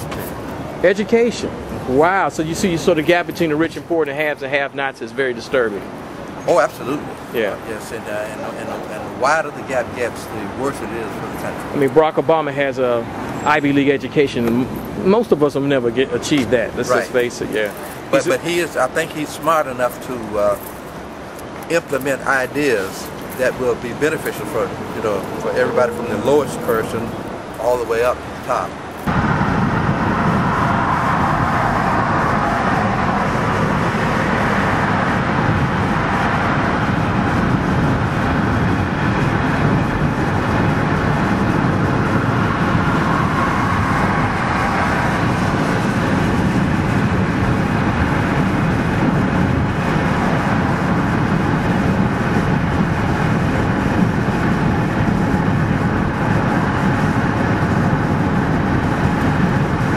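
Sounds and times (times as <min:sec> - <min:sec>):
car road noise: 0:00.0 - 0:59.9.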